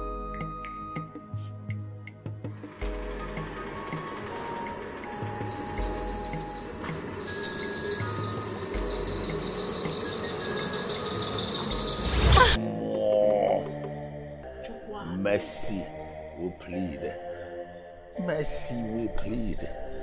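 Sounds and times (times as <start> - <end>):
shrill insect-like high buzzing: 4.8 - 12.6.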